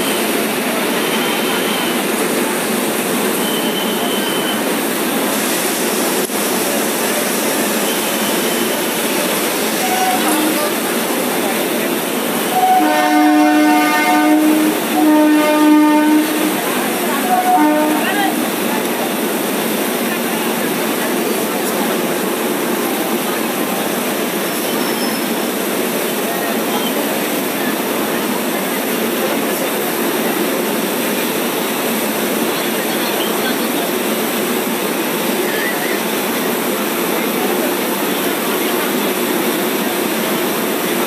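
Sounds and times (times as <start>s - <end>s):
train coaches rumbling past: 0.0s - 41.0s
train horn blasts: 9.8s - 10.9s, 12.5s - 18.6s.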